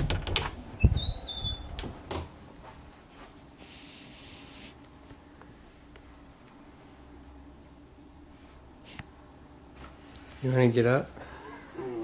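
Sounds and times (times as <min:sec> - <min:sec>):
door hinge squeak: 0:00.8 - 0:01.8.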